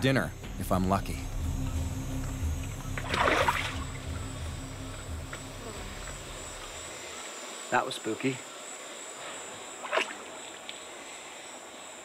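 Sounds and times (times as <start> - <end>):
water lapping and trickling: 2.2 - 7.6, 9.0 - 12.0
loud water splash: 3.0 - 4.5.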